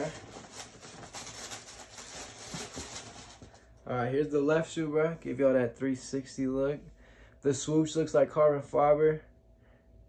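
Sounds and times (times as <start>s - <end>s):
tissue paper rustling: 0.0s - 3.6s.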